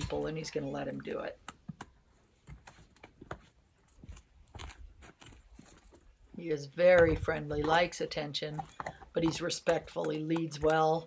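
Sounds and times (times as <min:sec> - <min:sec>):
footsteps crunching on dirt: 0:02.1 - 0:10.9.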